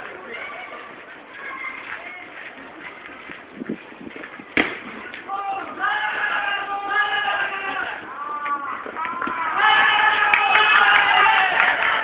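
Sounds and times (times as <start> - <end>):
crowd talking: 0.0 - 12.0.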